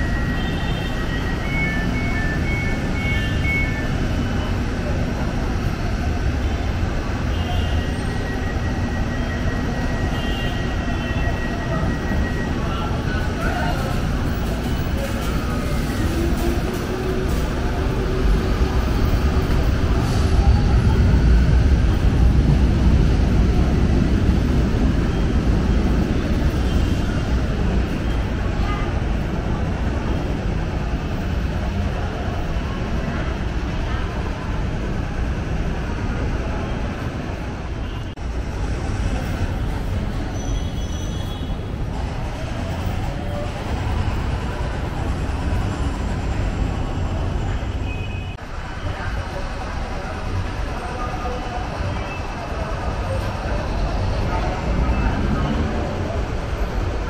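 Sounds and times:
light-rail train rumbling: 0.0s - 57.0s.

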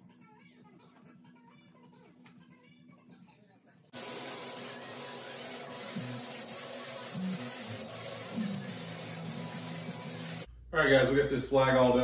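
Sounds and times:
spray gun hissing: 4.0s - 10.5s.

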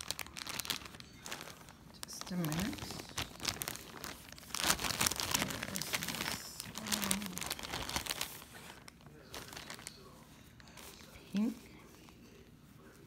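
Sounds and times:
plastic bag crinkling: 0.0s - 12.1s.

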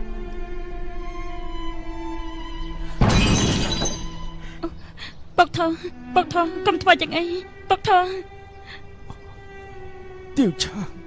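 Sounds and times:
crockery shattering on hard floor: 3.0s - 4.2s.

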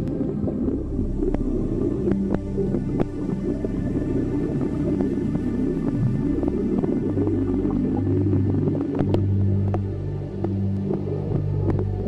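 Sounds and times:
low droning ambient music: 0.0s - 12.0s.

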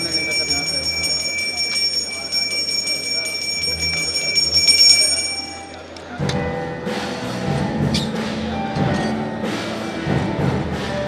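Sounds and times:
hand bell ringing rapidly: 0.0s - 5.9s.

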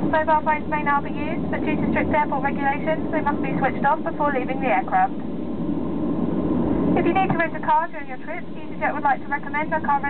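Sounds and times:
cabin announcement voice: 0.0s - 5.2s, 6.9s - 10.0s
aircraft cabin rumble: 0.0s - 10.0s.

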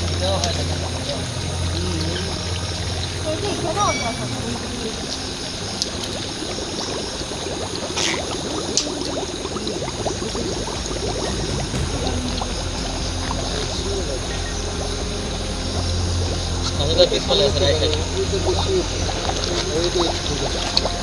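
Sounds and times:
gas bubbling through muddy water: 0.0s - 21.0s.

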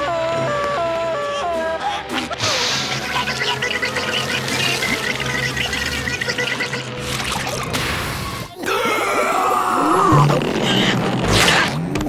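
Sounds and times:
background music: 0.0s - 9.0s
cartoon water gushing and gurgling: 2.2s - 10.6s
bubbly blips: 2.9s - 8.2s.

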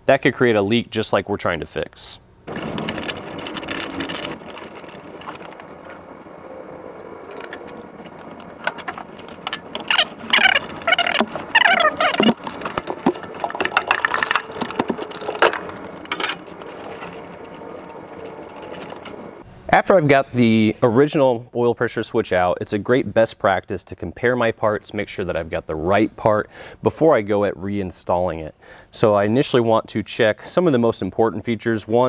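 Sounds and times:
short squeaks: 2.5s - 19.4s.

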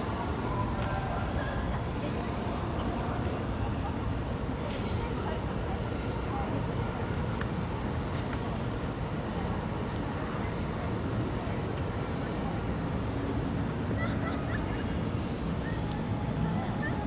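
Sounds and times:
murmur of passers-by: 0.0s - 17.0s
traffic rumble: 0.0s - 17.0s.

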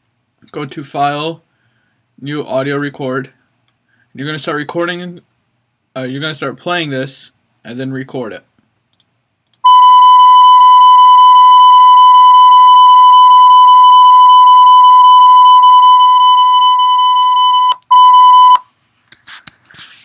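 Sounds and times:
high-pitched test-tone beep: 9.7s - 18.6s.

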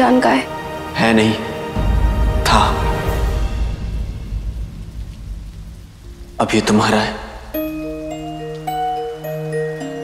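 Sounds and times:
low rumbling: 0.5s - 9.2s
faint hiss: 0.8s - 10.0s.

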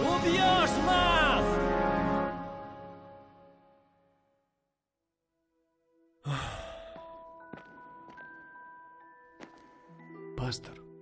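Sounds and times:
man sighing: 6.2s - 7.1s.

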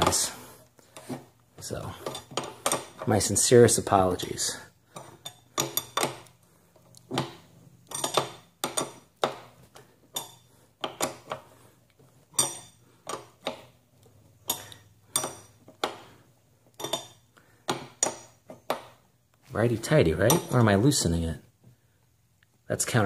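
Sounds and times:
wrench clinking on metal pedal: 5.0s - 6.3s, 7.1s - 9.5s, 10.1s - 11.4s, 12.4s - 13.7s, 14.4s - 16.0s, 16.8s - 18.3s.

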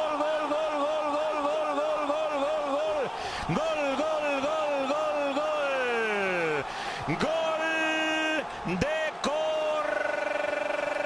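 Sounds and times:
commentator shouting goal: 0.0s - 11.0s
stadium crowd noise: 0.0s - 11.0s.

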